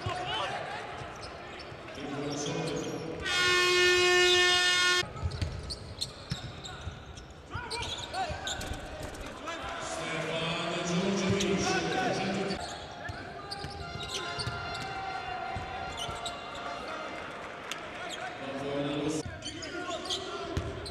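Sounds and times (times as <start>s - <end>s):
arena horn buzzing: 3.2s - 5.0s
shoes squeaking on court: 5.2s - 9.2s, 12.4s - 15.0s, 15.9s - 16.6s.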